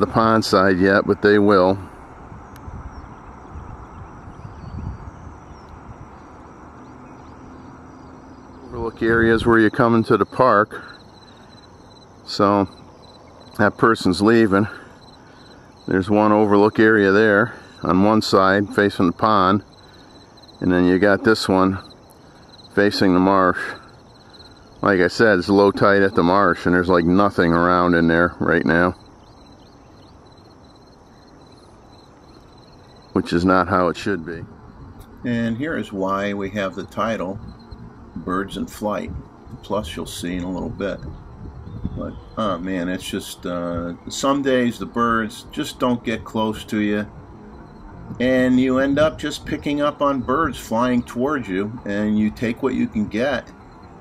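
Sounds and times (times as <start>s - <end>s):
faint distant chirps: 0.0s - 54.0s
low background hiss: 0.0s - 54.0s
low uneven rumble: 0.0s - 54.0s.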